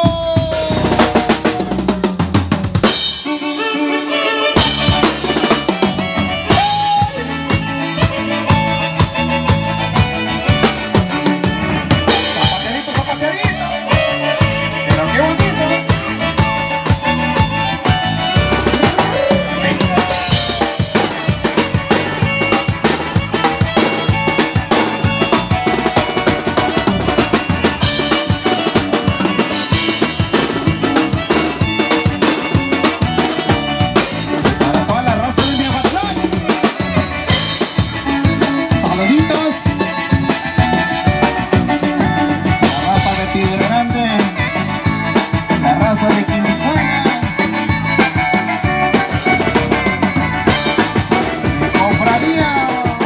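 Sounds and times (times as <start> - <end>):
electronic keyboards: 0.0 - 53.0
live band music: 0.0 - 53.0
steady drum beat: 0.0 - 53.0.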